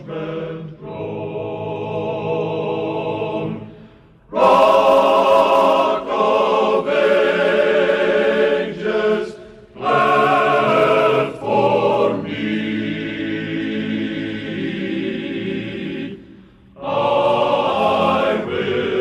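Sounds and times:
male chorus singing a hymn: 0.0s - 19.0s.

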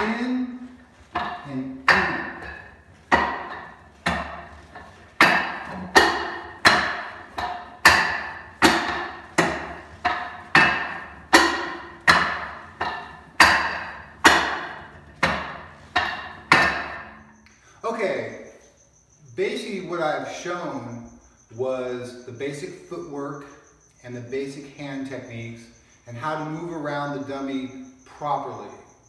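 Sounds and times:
wooden dummy being struck: 0.0s - 17.4s.

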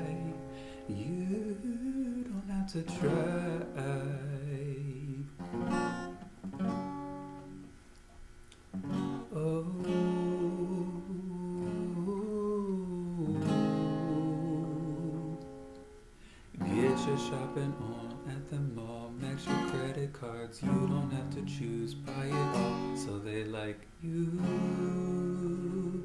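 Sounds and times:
acoustic guitar strumming: 0.0s - 7.8s, 8.7s - 26.0s
man humming: 9.3s - 15.6s, 24.0s - 26.0s.

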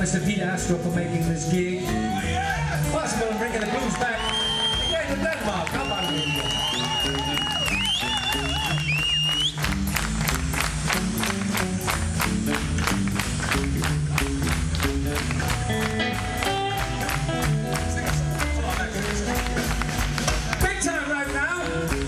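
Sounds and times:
bass line: 0.0s - 22.0s
fast drum beat: 0.0s - 22.0s
amplified blues harmonica: 4.2s - 20.0s.

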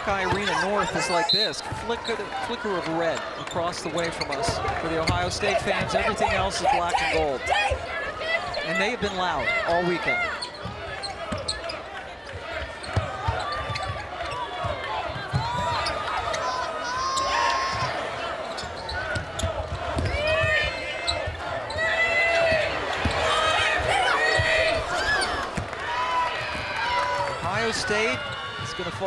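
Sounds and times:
arena crowd murmur: 0.0s - 29.0s
sneakers squeaking on floor: 3.4s - 6.1s, 10.0s - 11.8s, 12.8s - 23.3s.

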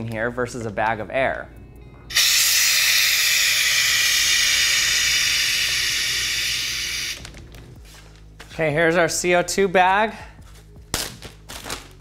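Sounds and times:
compressed gas hissing from tube: 2.1s - 7.4s.

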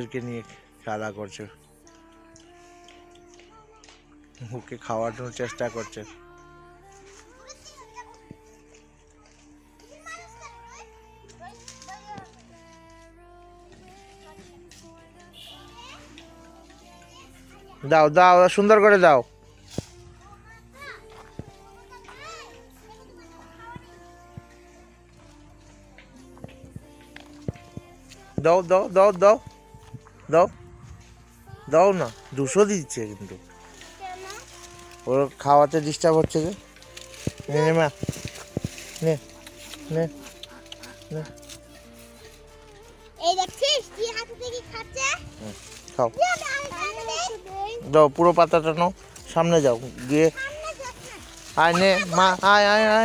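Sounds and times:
child talking in high voice: 7.4s - 8.2s, 9.9s - 12.3s, 15.6s - 16.1s, 21.7s - 23.9s, 33.9s - 34.5s, 43.2s - 45.3s, 46.2s - 47.8s, 50.3s - 52.4s.

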